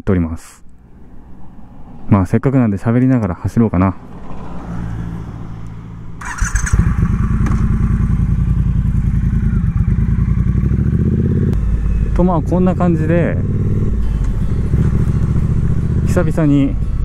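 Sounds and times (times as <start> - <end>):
motorcycle engine: 3.8 - 17.0.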